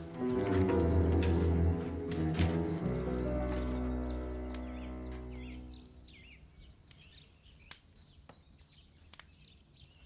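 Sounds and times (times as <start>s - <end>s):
background music: 0.0s - 6.4s
bird chirping: 0.0s - 10.0s.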